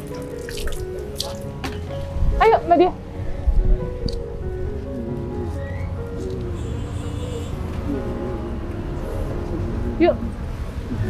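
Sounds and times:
water splashing on body and ground: 0:00.0 - 0:01.8.

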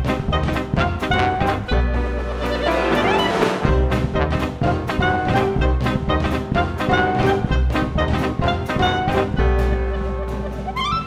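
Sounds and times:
steady drum beat: 0:00.0 - 0:10.8
trombone: 0:00.0 - 0:11.0
trumpet: 0:00.0 - 0:11.0
walking double bass: 0:00.0 - 0:11.0.

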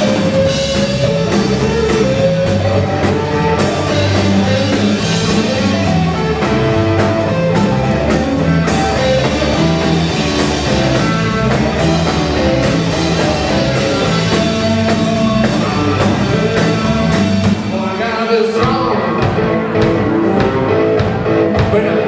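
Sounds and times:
bass notes: 0:00.0 - 0:22.0
drum kit beat: 0:00.0 - 0:22.0
electric guitar: 0:00.0 - 0:22.0.

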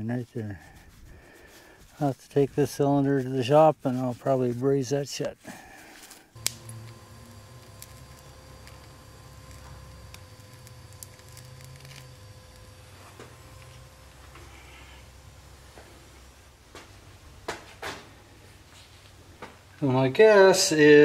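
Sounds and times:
torch flame rumbling: 0:06.4 - 0:16.7.

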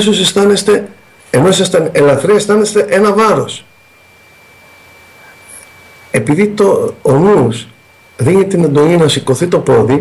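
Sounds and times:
high-pitched electrical whine: 0:00.0 - 0:10.0
low background hiss: 0:00.0 - 0:10.0.

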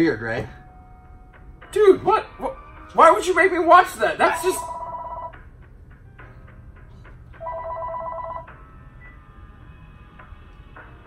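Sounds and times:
telephone ringing: 0:04.6 - 0:05.4, 0:07.4 - 0:08.6.

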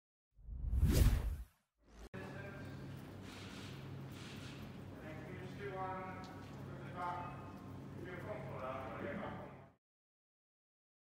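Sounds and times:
whoosh sound effect: 0:00.5 - 0:02.1.

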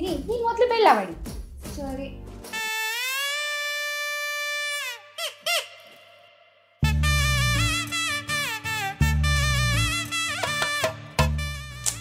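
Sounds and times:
music: 0:00.0 - 0:05.4, 0:06.8 - 0:12.0
squeaky reedy cartoon tone: 0:02.6 - 0:06.0.

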